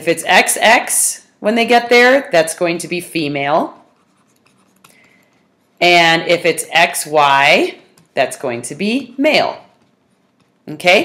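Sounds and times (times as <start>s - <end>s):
stylus tapping and scratching tablet: 3.2s - 11.0s.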